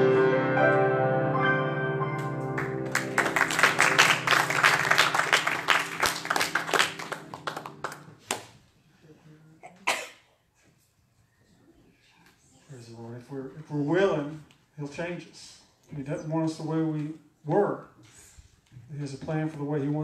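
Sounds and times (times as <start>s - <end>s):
grand piano chord ringing: 0.0s - 8.2s
audience applauding: 2.2s - 8.5s.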